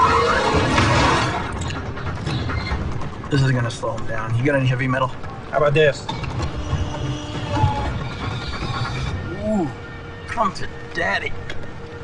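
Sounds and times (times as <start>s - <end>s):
sharp metallic clanks and clicks: 0.8s - 4.2s.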